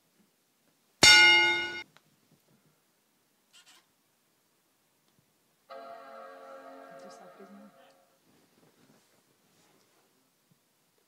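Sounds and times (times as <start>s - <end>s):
laptop startup chime: 5.7s - 7.9s.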